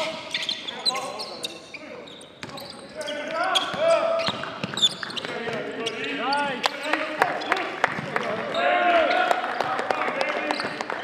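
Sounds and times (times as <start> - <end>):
sneakers squeaking: 0.0 - 9.3, 10.4 - 10.9
basketball bouncing on wooden floor: 3.7 - 5.6
players shouting: 8.2 - 9.8.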